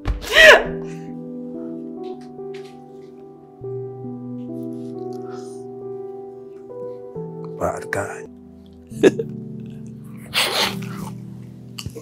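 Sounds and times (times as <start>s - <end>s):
background music with low tones: 0.0s - 12.0s.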